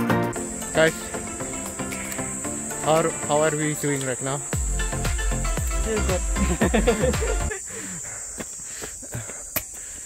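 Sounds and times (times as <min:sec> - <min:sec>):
background music: 0:00.0 - 0:07.5
insects droning: 0:00.0 - 0:10.0.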